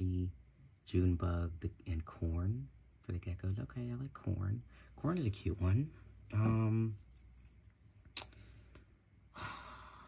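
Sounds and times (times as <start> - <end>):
person sighing: 9.3 - 10.0.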